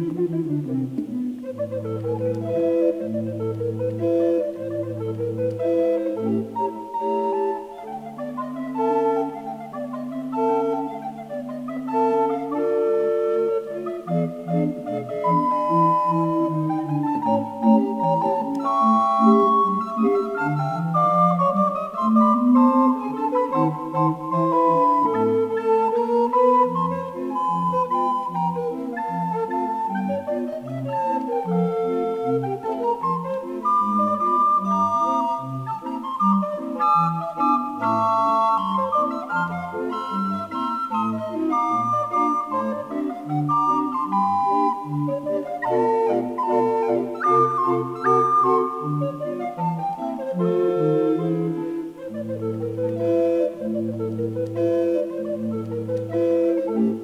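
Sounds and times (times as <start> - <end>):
recorder consort playing ragtime: 0.0 - 57.0.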